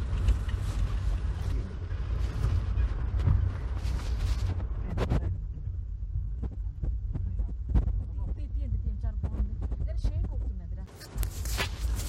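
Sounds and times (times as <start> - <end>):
low throbbing rumble: 0.0 - 11.5.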